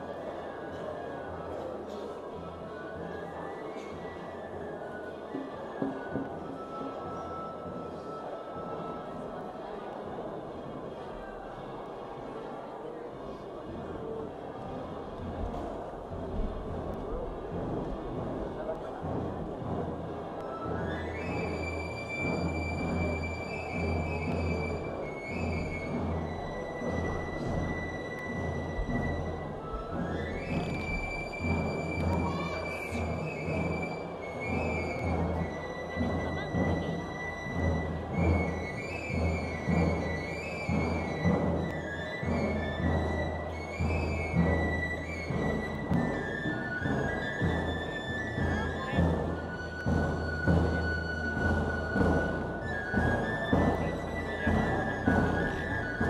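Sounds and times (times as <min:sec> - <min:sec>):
crowd chatter: 0:00.0 - 0:56.0
drum beating steady pulse: 0:13.7 - 0:56.0.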